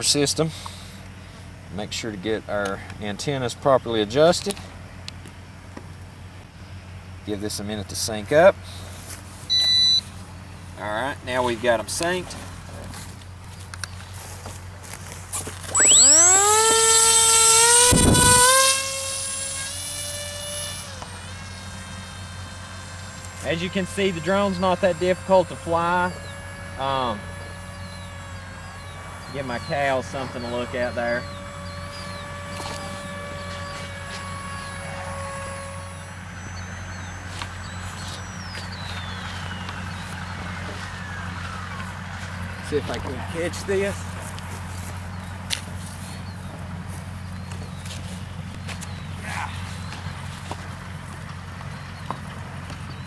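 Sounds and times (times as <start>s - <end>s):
electric propeller motor whine: 8.8s - 53.0s.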